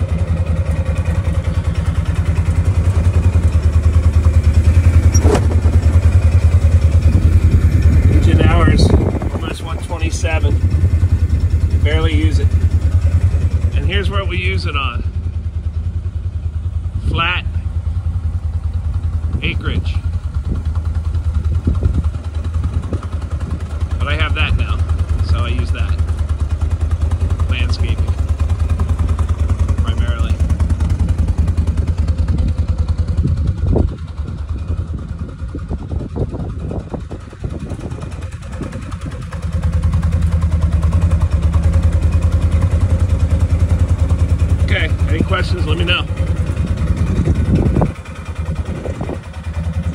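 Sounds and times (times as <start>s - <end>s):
utility vehicle engine idling: 0.0s - 49.9s.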